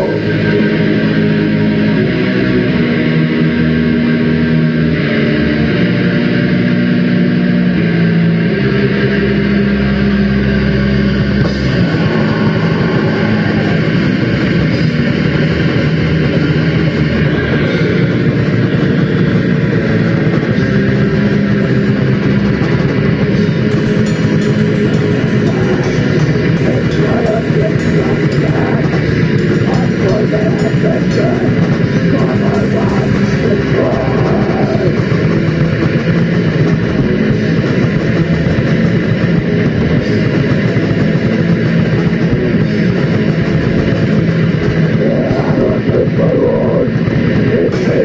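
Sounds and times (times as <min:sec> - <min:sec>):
metal band playing: 0:00.0 - 0:48.0.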